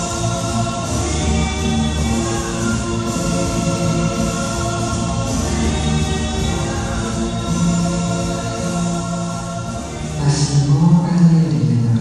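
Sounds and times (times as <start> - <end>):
choral singing with held chords: 0.0 - 10.9.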